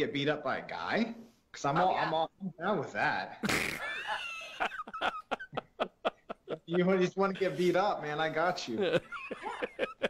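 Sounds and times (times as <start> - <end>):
person giggling: 8.7 - 10.0.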